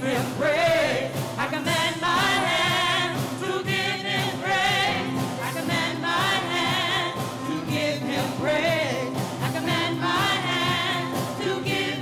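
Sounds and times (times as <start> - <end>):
gospel choir singing in harmony: 0.0 - 12.0.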